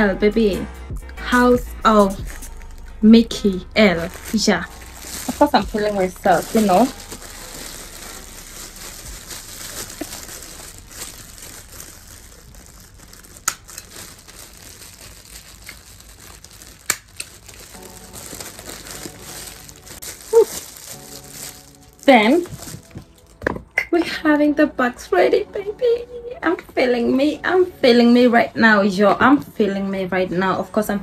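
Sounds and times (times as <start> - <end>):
plastic packaging crinkling: 1.9 - 23.8.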